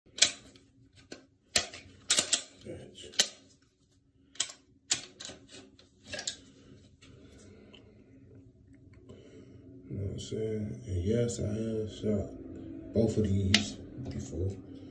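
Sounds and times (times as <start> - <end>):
pistol metallic clicks and clacks: 1.5 - 3.4.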